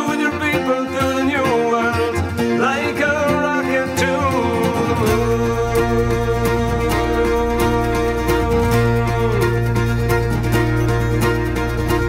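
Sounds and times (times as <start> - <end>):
plucked acoustic guitar: 0.0 - 12.0
sliding melody line: 0.0 - 12.0
bass: 2.1 - 12.0.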